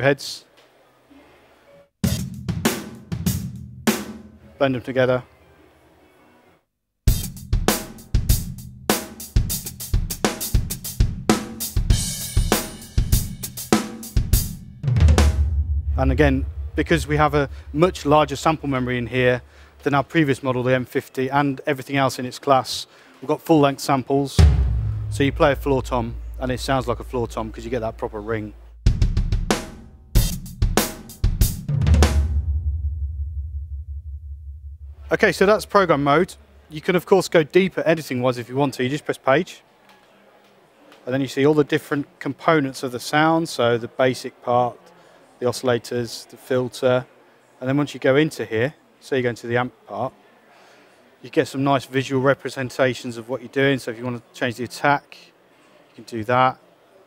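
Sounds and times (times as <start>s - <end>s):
drum and cymbal hits: 2.0s - 4.4s, 7.1s - 19.5s, 24.4s - 35.6s
low ringing drum: 14.8s - 19.4s, 24.4s - 29.8s.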